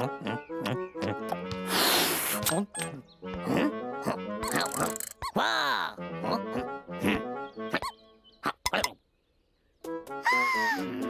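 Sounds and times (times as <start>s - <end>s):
character grunts and murmurs: 0.0s - 1.8s, 2.6s - 9.0s, 10.6s - 11.0s
playful cartoon music: 0.0s - 9.0s, 9.7s - 11.0s.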